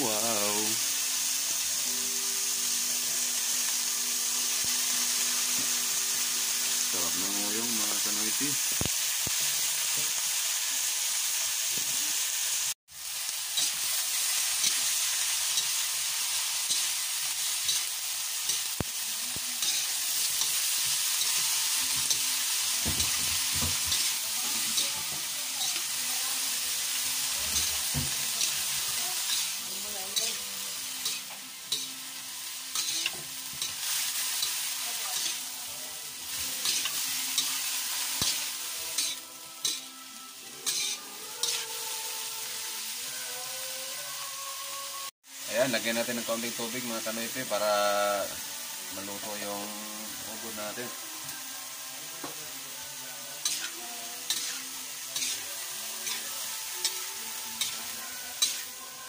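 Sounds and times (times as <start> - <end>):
food sizzling in hot oil: 0.0 - 59.0
spatula scraping a pan: 40.6 - 41.6, 53.4 - 58.8.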